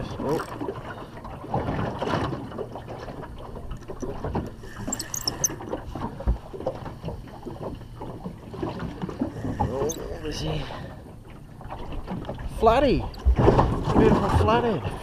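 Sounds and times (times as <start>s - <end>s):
water slapping boat hull: 0.0s - 15.0s.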